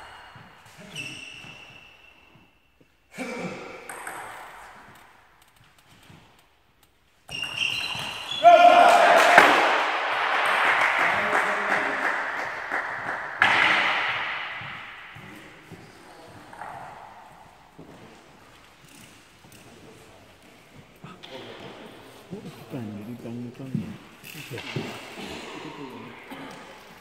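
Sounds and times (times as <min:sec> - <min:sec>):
table tennis ball bouncing: 0:03.8 - 0:05.2, 0:12.1 - 0:15.4
people clapping: 0:08.4 - 0:15.0.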